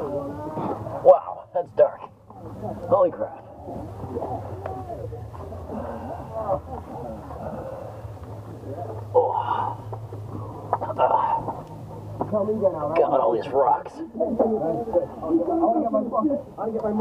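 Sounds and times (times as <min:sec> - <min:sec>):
steady low hum: 0:00.0 - 0:17.0
indistinct voices and grunts: 0:10.7 - 0:11.6.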